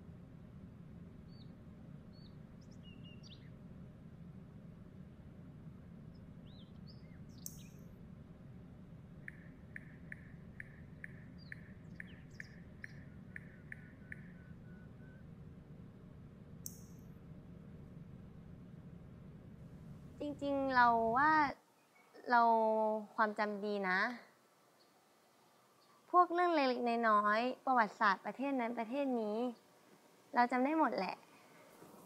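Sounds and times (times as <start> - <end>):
steady low hum: 0.0 - 32.0
faint bird chirps: 6.4 - 7.9, 9.2 - 15.4
sharp high clicks: 7.4 - 7.8, 16.6 - 17.1.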